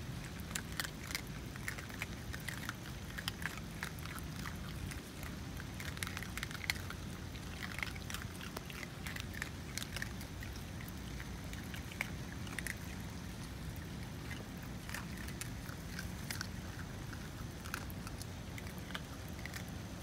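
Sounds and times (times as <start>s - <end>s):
animals crunching food pellets: 0.0s - 20.0s
steady low rumble: 0.0s - 20.0s.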